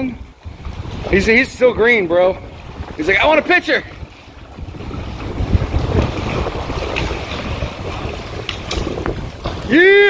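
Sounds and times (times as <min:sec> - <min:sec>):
waves washing against rocks: 0:00.0 - 0:10.0
wind buffeting microphone: 0:00.0 - 0:10.0.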